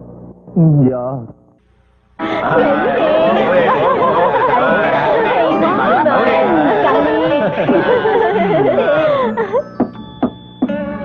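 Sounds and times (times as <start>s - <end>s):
overlapping voices chattering: 2.2s - 9.6s.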